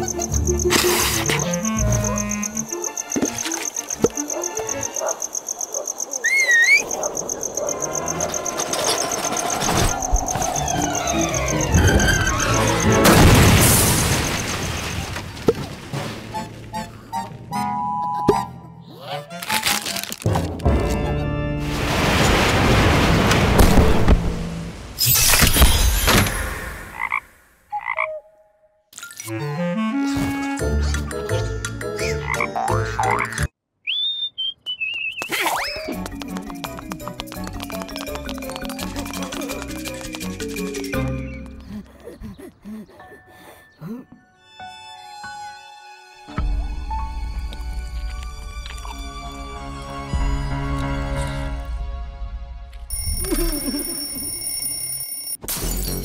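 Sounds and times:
cartoon music: 0.0s - 4.9s, 29.2s - 33.5s, 35.4s - 44.4s
wavering whistle-like glide: 6.2s - 13.0s
rumbling build-up with rising tones: 7.1s - 13.1s
warbling whistle: 33.8s - 35.3s.

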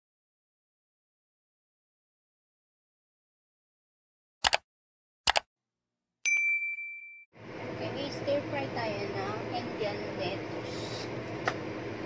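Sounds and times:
bright bell chime: 6.3s - 7.3s.

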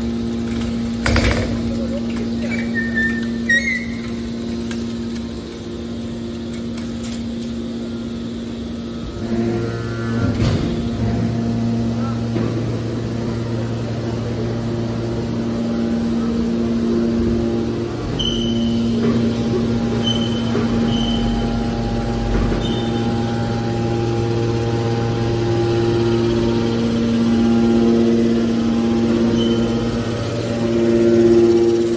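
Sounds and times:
deep machine drone under load: 0.0s - 31.9s
hydraulic baler hum: 0.0s - 31.9s.

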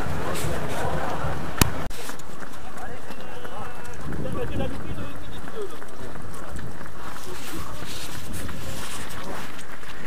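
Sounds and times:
indistinct voices: 0.0s - 9.5s
runners' footsteps on wet road: 0.0s - 10.0s.

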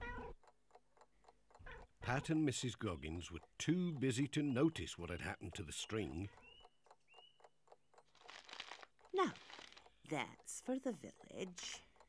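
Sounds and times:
rustling of paper parcels: 8.1s - 10.0s.

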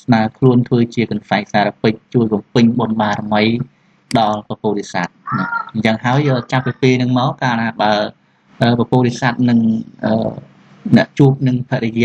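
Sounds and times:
man narrating: 0.0s - 12.0s.

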